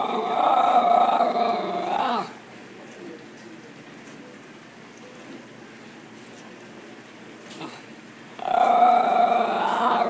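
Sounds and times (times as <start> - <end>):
dog whining: 8.4 - 10.0.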